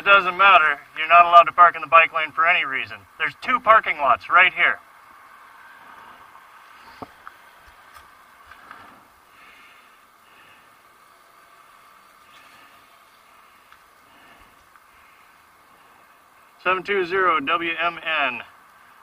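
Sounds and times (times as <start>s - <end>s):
low hum of traffic: 0.0s - 19.0s.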